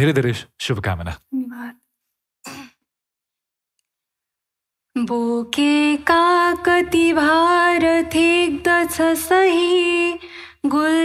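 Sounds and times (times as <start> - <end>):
man speaking: 0.0 - 1.2.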